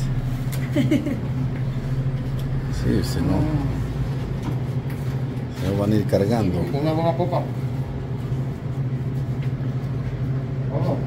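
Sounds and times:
rumbling background: 0.0s - 11.0s
steady low hum: 0.0s - 11.0s.

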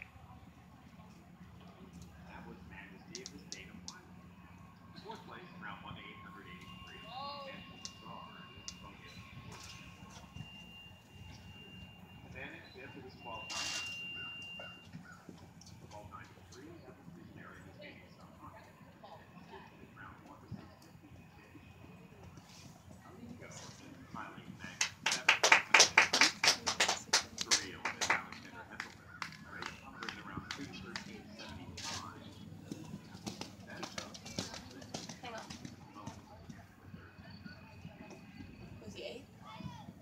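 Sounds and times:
faint indistinct voices: 0.0s - 40.0s
hands clapping: 3.1s - 4.0s, 24.8s - 31.3s, 33.2s - 35.7s.

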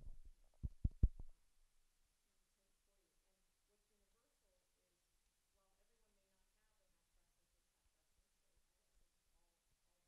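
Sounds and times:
dull low thumps: 0.0s - 1.3s.

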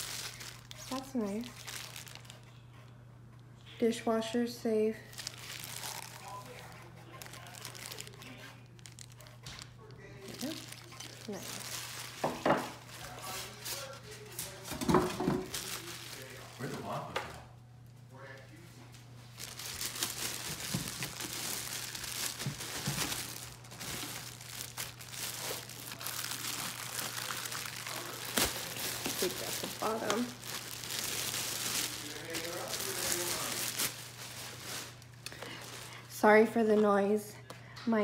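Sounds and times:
plastic bag crinkling: 0.0s - 2.4s, 4.9s - 17.1s, 19.2s - 37.0s.

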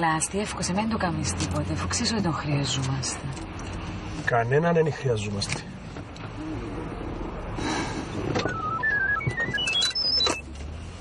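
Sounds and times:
phone ringtone beeps: 8.5s - 10.4s.

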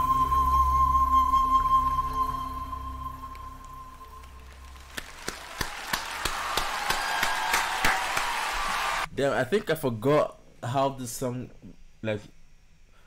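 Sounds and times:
audience applause: 3.3s - 9.1s
sharp individual claps: 3.3s - 9.1s.

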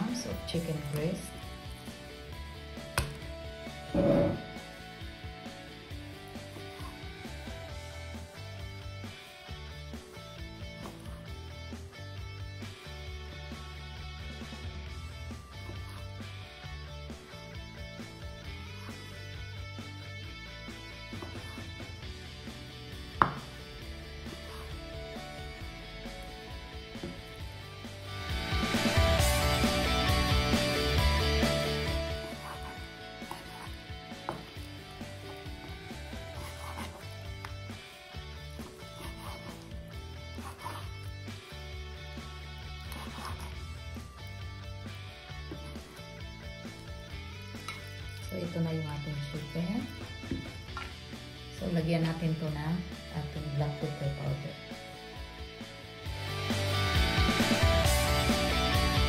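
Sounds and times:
background guitar music: 0.0s - 59.0s
knife knocking on wooden board: 23.2s - 23.5s
knife slicing raw meat: 36.0s - 37.6s, 42.9s - 43.6s.

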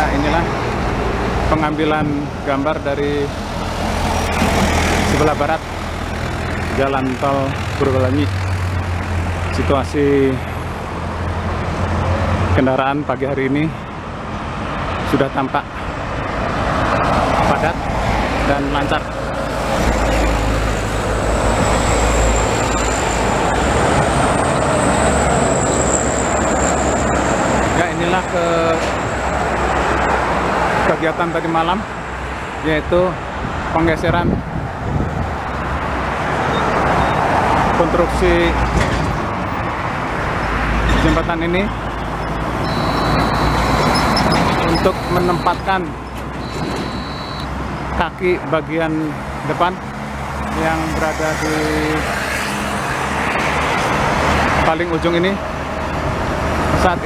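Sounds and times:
highway traffic roar: 0.0s - 57.0s.

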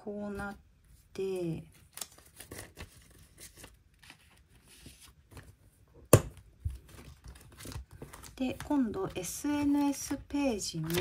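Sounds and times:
paper rustling: 1.7s - 5.8s, 6.6s - 11.0s.

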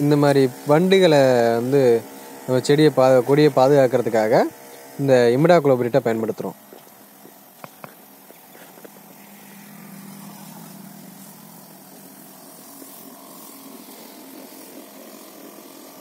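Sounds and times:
faint hiss: 0.0s - 16.0s
low motor hum: 0.0s - 16.0s.

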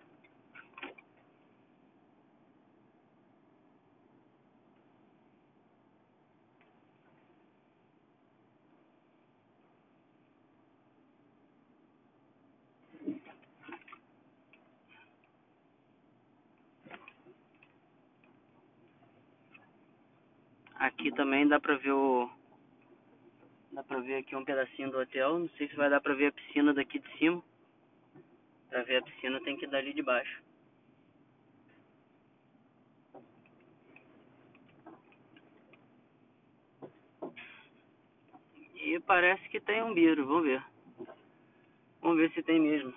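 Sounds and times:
faint car cabin hum: 0.0s - 42.9s
faint clicks and knocks: 16.5s - 19.9s, 33.1s - 36.0s, 36.7s - 38.7s.

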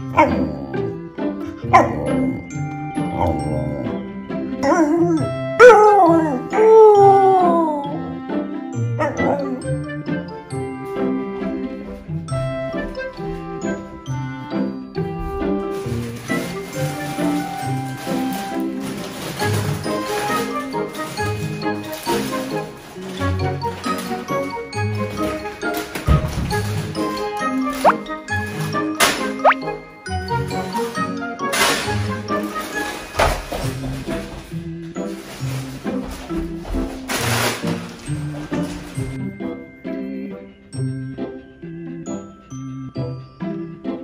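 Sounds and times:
tinkling chime-like music: 0.0s - 5.6s, 8.7s - 18.6s, 19.5s - 33.6s, 38.0s - 44.0s.

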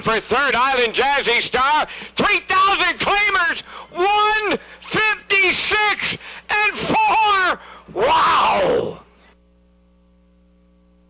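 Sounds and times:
race announcer calling: 0.0s - 9.0s
faint steady hum: 0.0s - 11.0s.

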